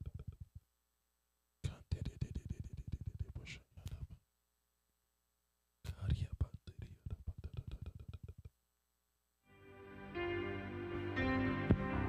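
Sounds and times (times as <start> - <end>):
rapid whispered prayer: 1.6 - 4.2, 5.9 - 8.5.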